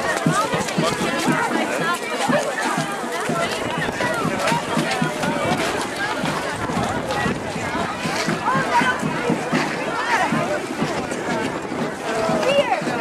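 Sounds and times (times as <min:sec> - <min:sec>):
crowd chattering: 0:00.0 - 0:13.0.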